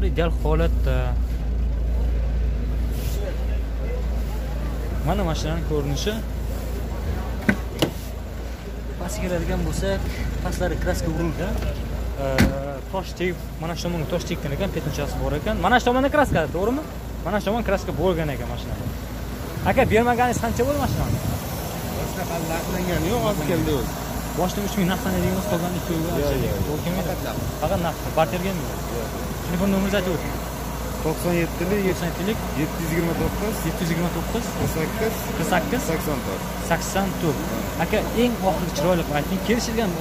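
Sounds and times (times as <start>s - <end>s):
car engine idling: 0.0s - 40.0s
faint voices talking: 0.0s - 40.0s
steady low rumble: 0.0s - 40.0s.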